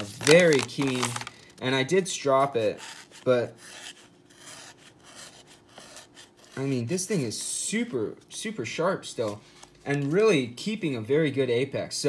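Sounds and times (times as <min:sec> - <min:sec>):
knife blade rubbing on paper: 0:02.4 - 0:07.5.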